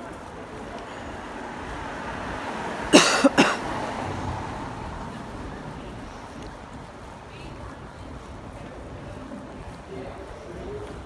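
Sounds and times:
street traffic hum: 0:00.0 - 0:11.0
person coughing: 0:02.9 - 0:03.6.

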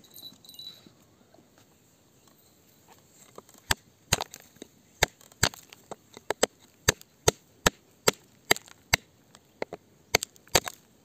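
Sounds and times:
digging tool striking stony ground: 0:03.3 - 0:10.9.

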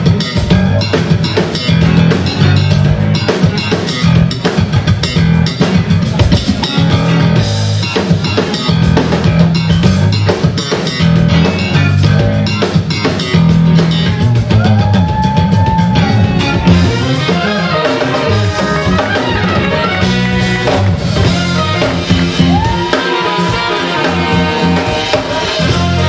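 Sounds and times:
drum kit groove: 0:00.0 - 0:26.0
electric bass line: 0:00.0 - 0:26.0
electric guitar: 0:00.0 - 0:26.0
funk jazz band playing: 0:00.0 - 0:26.0.

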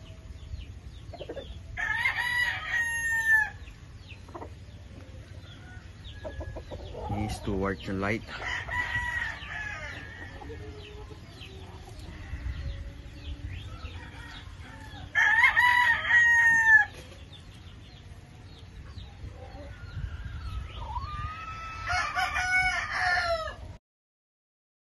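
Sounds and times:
roosters crowing: 0:00.0 - 0:23.8.

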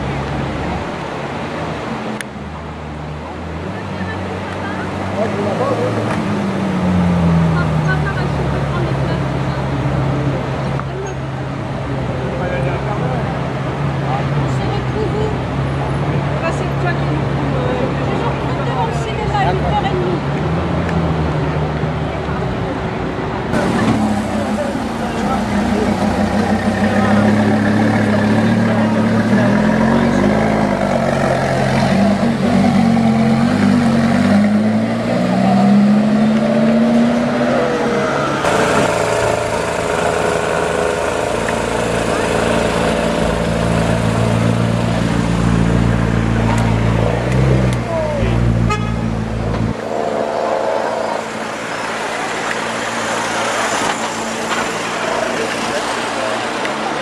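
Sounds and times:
street noise: 0:00.0 - 0:57.0
voices: 0:00.0 - 0:57.0.

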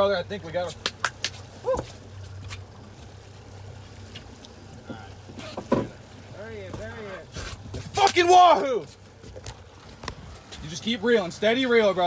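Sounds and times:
outboard motor humming: 0:00.0 - 0:12.0
man whooping: 0:01.6 - 0:01.9
faint ticks: 0:03.8 - 0:05.0.

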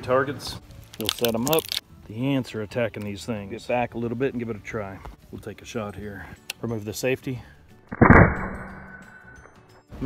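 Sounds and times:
air rifle shot ringing: 0:07.9 - 0:09.6.

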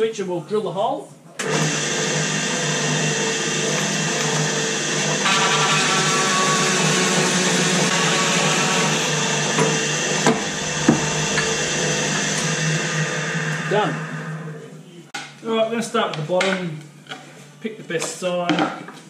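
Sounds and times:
drill motor running: 0:01.4 - 0:14.7
hole saw cutting plywood: 0:01.5 - 0:14.4.

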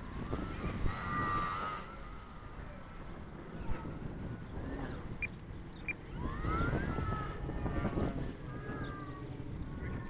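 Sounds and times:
model airplane motor whining: 0:00.0 - 0:10.0
wind rumble on microphone: 0:00.0 - 0:10.0.

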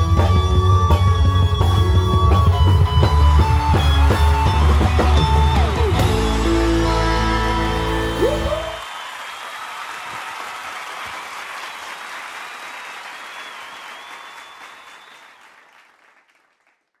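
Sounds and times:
high whistle: 0:00.0 - 0:09.1, 0:13.2 - 0:15.6
audience applause: 0:02.4 - 0:17.0.

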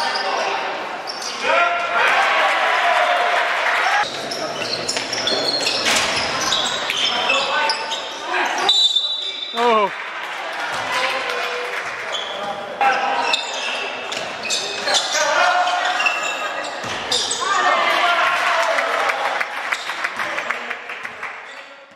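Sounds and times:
people shouting in a hall: 0:00.0 - 0:04.1, 0:14.8 - 0:19.5.

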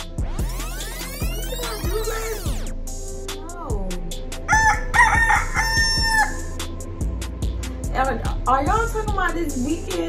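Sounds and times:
rooster crowing: 0:04.5 - 0:06.6.

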